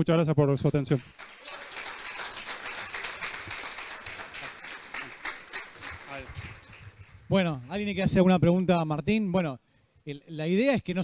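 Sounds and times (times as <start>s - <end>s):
audience applauding: 0.9s - 7.8s.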